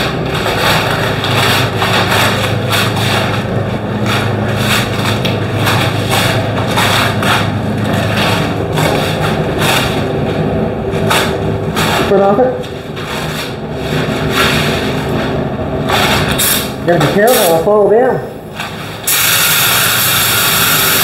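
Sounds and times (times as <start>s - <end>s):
steady low machine hum: 0.0s - 21.0s
compressed air spray rushing: 15.9s - 17.5s, 19.0s - 21.0s.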